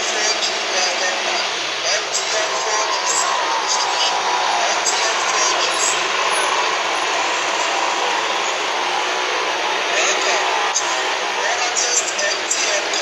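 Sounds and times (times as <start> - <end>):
motorcycle engines passing: 0.0 - 13.0
street traffic noise: 0.0 - 13.0.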